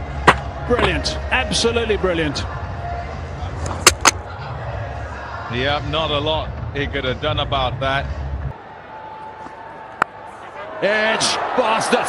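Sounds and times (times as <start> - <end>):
stadium crowd noise: 0.0 - 12.0
cricket ball hitting bat: 0.2 - 0.9.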